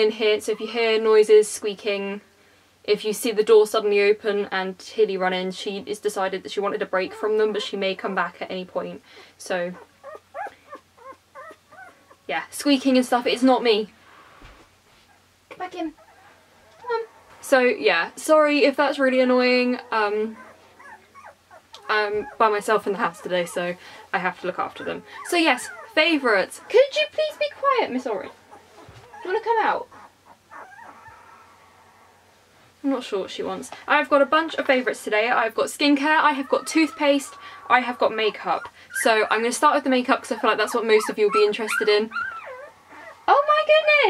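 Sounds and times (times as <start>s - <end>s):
puppy whimpering: 7.0s - 7.8s, 9.7s - 12.3s, 15.0s - 32.3s, 35.8s - 43.9s.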